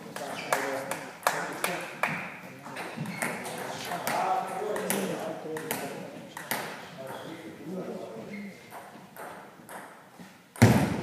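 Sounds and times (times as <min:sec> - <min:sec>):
people talking: 0:00.0 - 0:08.6.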